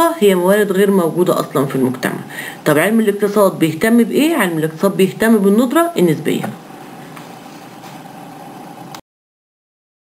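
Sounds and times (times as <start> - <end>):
faint hum: 0.0 - 9.0.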